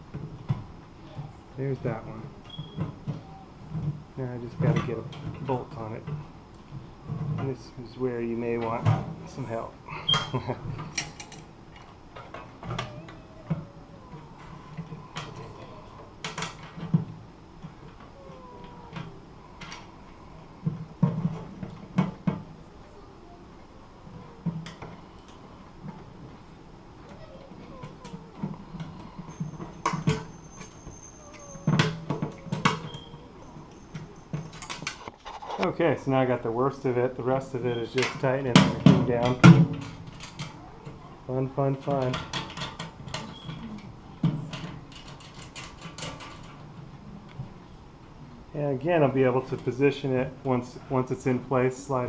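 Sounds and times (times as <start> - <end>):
metal brackets clicking and scraping: 41.8 - 46.6.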